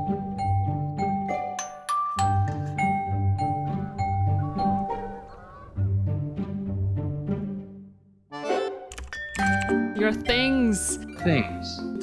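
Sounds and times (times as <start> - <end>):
trailer music with bass and mallets: 0.0 - 12.0
geese honking: 3.7 - 6.0.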